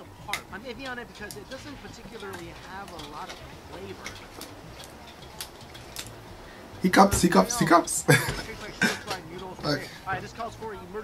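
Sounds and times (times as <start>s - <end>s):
low hiss of frying: 0.0s - 11.0s.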